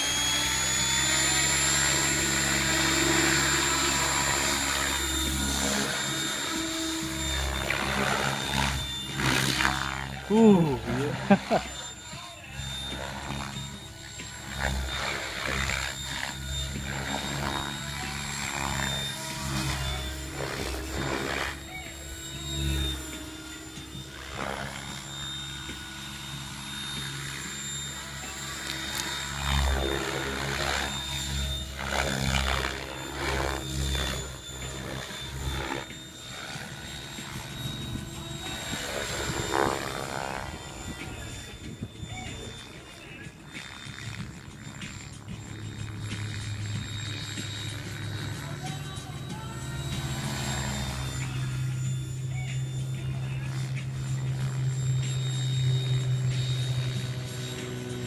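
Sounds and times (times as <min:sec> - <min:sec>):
model helicopter motor and rotor whine: 0:00.0 - 0:58.0.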